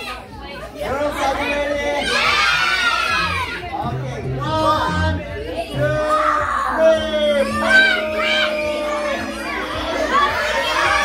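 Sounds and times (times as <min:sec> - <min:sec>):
children shouting and cheering: 0:00.0 - 0:11.0.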